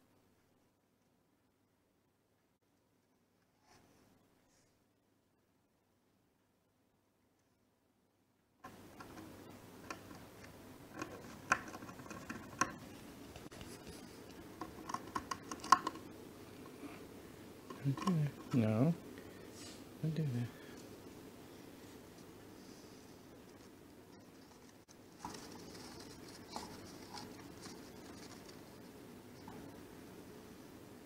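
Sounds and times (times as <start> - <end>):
rat scratching on wooden floor: 9.0 - 16.1, 23.4 - 29.8
rat claws clicking on wood: 10.9 - 12.9, 14.6 - 16.0.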